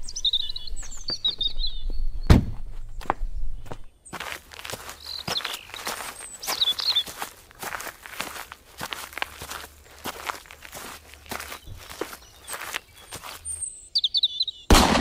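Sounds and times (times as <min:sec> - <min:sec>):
soft footsteps outdoors: 0:00.0 - 0:14.2
birds chirping: 0:00.0 - 0:14.7.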